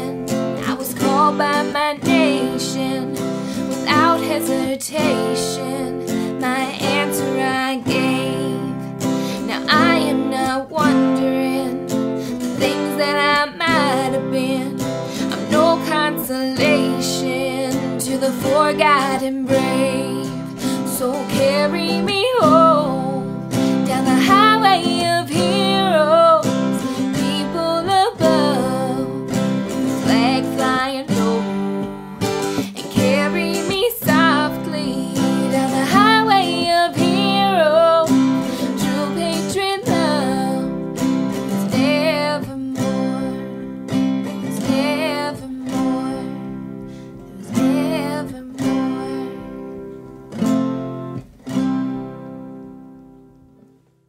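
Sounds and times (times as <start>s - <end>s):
acoustic guitar strumming: 0.0s - 53.8s.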